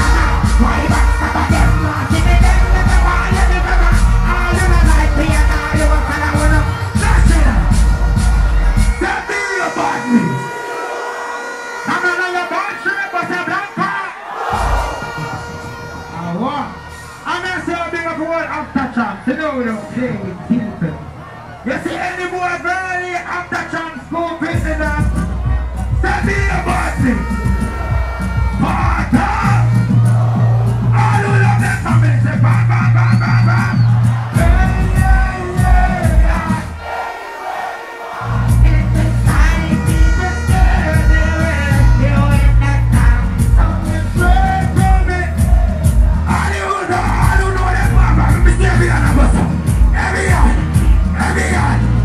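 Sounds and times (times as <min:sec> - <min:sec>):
man chanting over microphone: 0:00.0 - 0:07.7, 0:38.2 - 0:45.5, 0:46.2 - 0:52.0
bass hit: 0:00.0 - 0:09.0, 0:14.4 - 0:16.1
bass-heavy beat: 0:00.0 - 0:09.5, 0:14.4 - 0:16.9, 0:24.4 - 0:52.0
crowd noise: 0:00.0 - 0:52.0
loud dancehall music: 0:00.0 - 0:52.0.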